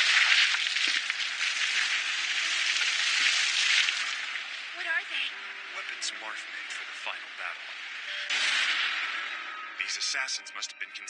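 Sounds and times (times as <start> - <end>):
rain-like hissing: 0.0 - 9.4.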